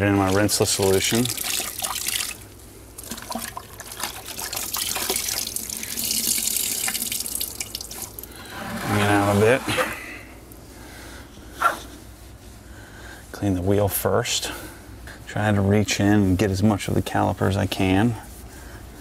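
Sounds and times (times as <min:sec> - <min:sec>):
water splashing and dripping: 0:00.2 - 0:02.4, 0:03.0 - 0:08.3.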